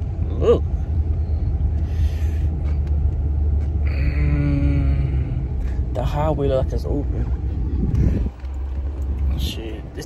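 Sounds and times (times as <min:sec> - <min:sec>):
truck driving rumble: 0:00.0 - 0:10.0.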